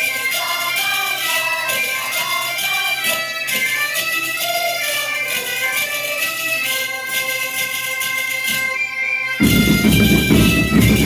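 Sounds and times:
bagpipes holding notes: 0:00.0 - 0:11.0
jingling tambourines: 0:00.0 - 0:11.0.

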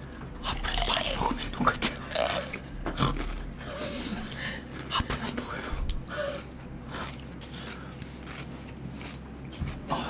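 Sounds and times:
person chewing food: 0:00.0 - 0:10.0.

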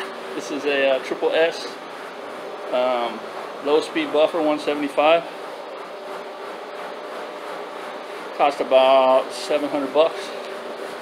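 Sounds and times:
floor buffer motor hum: 0:00.0 - 0:11.0.

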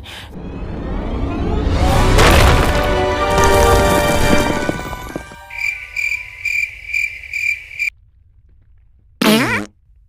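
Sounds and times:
cartoon cricket chirp: 0:05.5 - 0:07.9.

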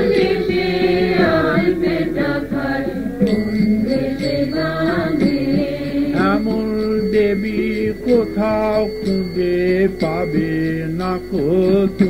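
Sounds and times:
devotional chanting: 0:00.0 - 0:12.0
steady held drone tone: 0:00.0 - 0:12.0.

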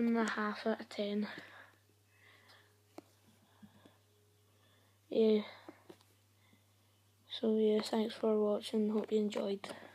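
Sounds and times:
faint steady hum: 0:00.0 - 0:09.9
faint breathy sound: 0:01.2 - 0:07.0.

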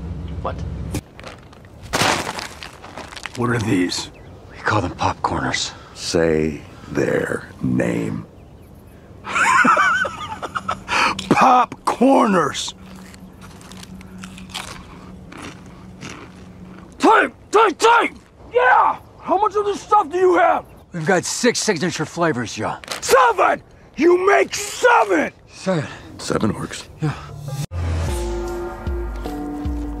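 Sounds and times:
loud crackling crunch: 0:01.0 - 0:04.0, 0:12.6 - 0:17.1, 0:21.9 - 0:23.8.

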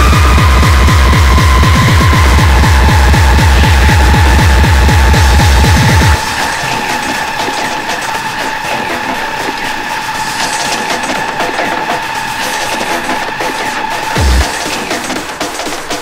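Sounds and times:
distorted kick drums: 0:00.0 - 0:09.5, 0:10.2 - 0:16.0
distorted noise: 0:00.0 - 0:16.0.

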